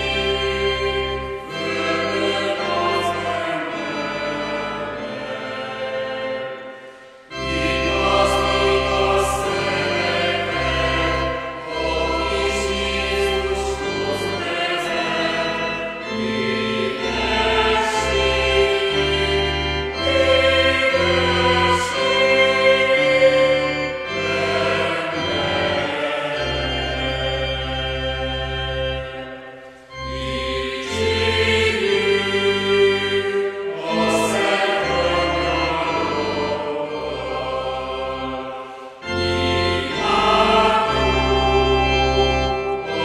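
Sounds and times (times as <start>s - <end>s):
choir singing: 0.0s - 43.0s.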